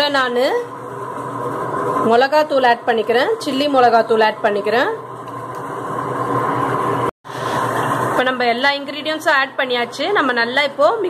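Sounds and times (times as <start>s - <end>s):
motor hum with high whine: 0.0s - 11.0s.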